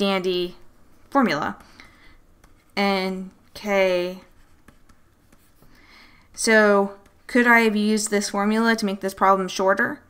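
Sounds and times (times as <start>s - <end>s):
stylus scratching on pen tablet: 1.1s - 5.8s.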